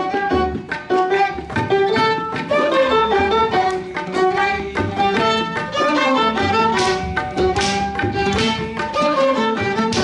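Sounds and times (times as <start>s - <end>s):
orchestra with bowed strings: 0.0s - 10.0s.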